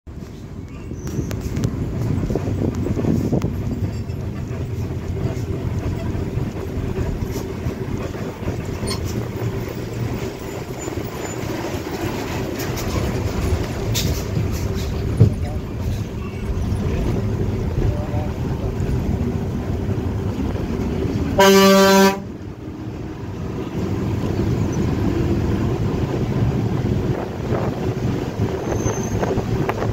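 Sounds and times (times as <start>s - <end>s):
vehicle engine with road rumble: 0.1s - 29.9s.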